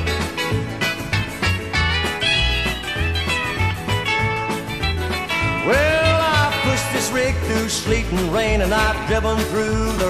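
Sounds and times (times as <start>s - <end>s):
guitar: 0.0s - 10.0s.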